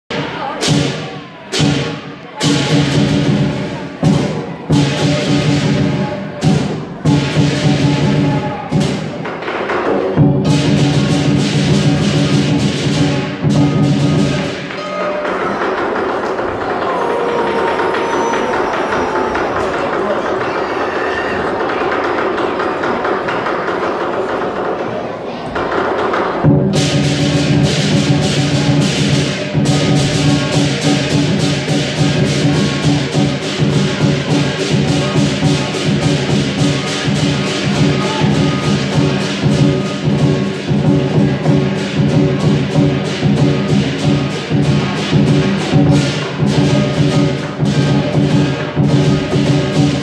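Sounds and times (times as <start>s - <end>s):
lion drum and cymbal strokes: 0.1s - 20.6s, 26.4s - 50.0s.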